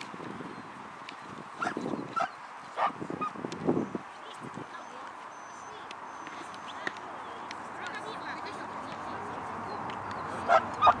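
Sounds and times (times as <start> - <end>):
open-air background noise: 0.0 - 11.0
dog barking: 10.5 - 11.0.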